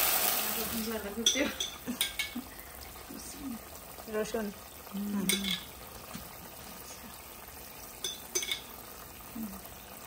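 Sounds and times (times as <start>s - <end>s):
faint simmering sizzle: 0.0s - 10.0s.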